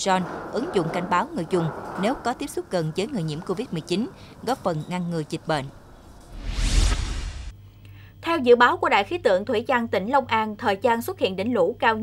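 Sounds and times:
whoosh with deep rumble: 0:05.8 - 0:07.5.

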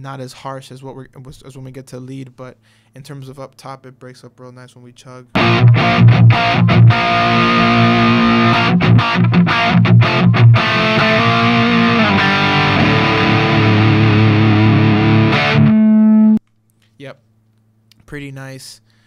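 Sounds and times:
distorted electric guitar riff: 0:05.4 - 0:16.4.

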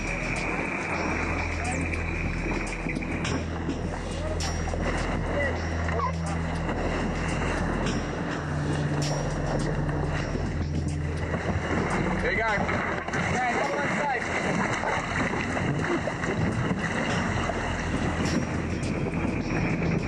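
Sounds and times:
low music drone: 0:00.0 - 0:20.0
sea noise: 0:00.0 - 0:20.0
wind: 0:00.0 - 0:20.0.

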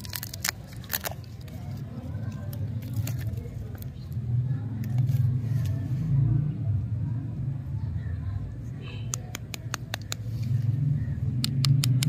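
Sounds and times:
paper wrapper crinkling and tearing: 0:00.0 - 0:04.2.

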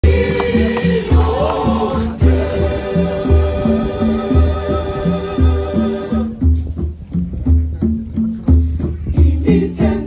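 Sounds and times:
choir singing: 0:00.0 - 0:06.4, 0:09.2 - 0:10.0
deep drum beats: 0:00.0 - 0:10.0.

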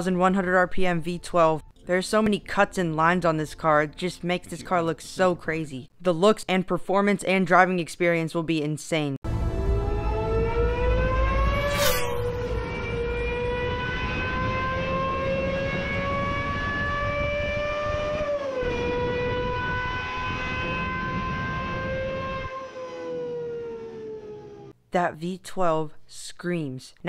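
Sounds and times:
engine screaming at high revs: 0:09.6 - 0:24.7.

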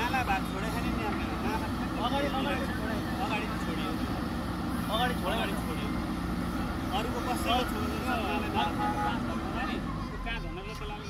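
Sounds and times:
backhoe diesel engine running: 0:00.0 - 0:11.0
men's voices: 0:00.0 - 0:11.0.

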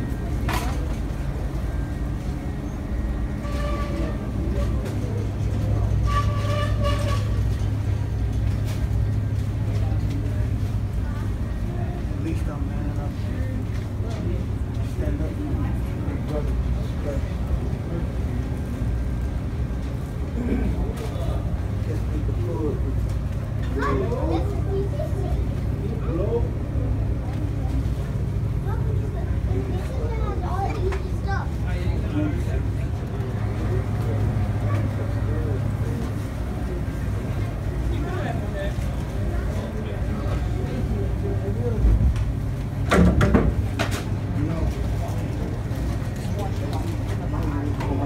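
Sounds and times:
faint voices: 0:00.0 - 0:48.0.

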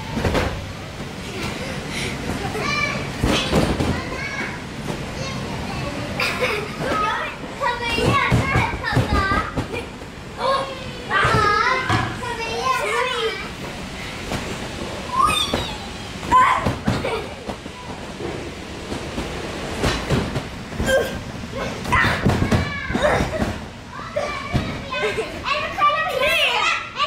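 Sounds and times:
young children talking and calling out: 0:01.4 - 0:13.7, 0:15.0 - 0:18.2, 0:21.0 - 0:27.0.

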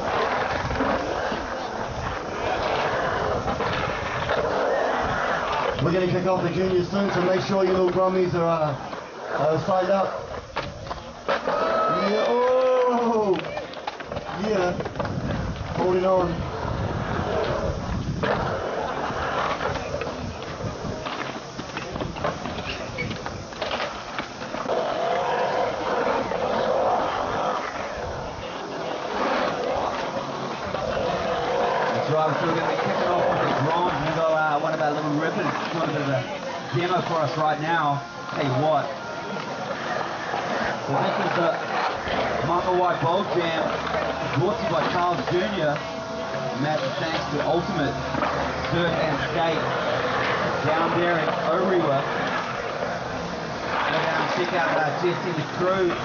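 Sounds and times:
crowd chatter: 0:00.0 - 0:56.0
skateboard clacks: 0:00.0 - 0:56.0
skateboard wheels rolling on concrete: 0:00.0 - 0:56.0.

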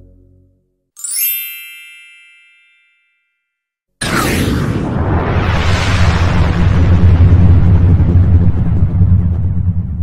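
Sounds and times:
bright chime ringing: 0:01.0 - 0:03.7.

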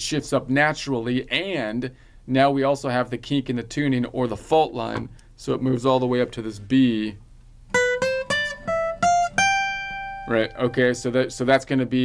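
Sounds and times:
acoustic guitar picked scale: 0:03.3 - 0:12.0.

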